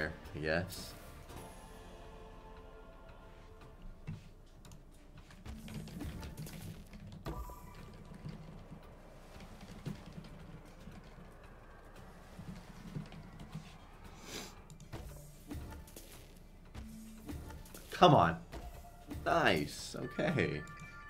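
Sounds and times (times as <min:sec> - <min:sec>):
quiet background music: 0:00.0 - 0:21.0
slot reels clicking and thumping: 0:04.6 - 0:11.9.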